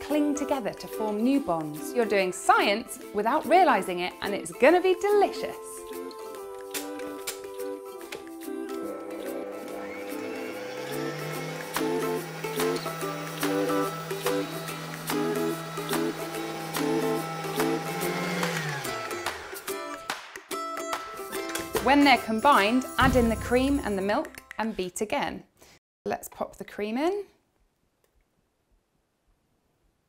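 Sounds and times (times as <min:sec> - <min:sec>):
ukulele music: 0:00.0 - 0:09.6, 0:18.6 - 0:24.6
stand mixer motor whisking: 0:08.7 - 0:19.9.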